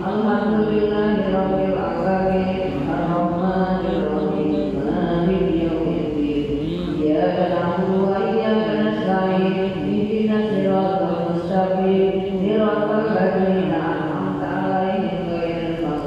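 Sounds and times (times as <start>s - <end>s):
man chanting a recitation: 2.6s - 5.4s, 6.5s - 7.0s.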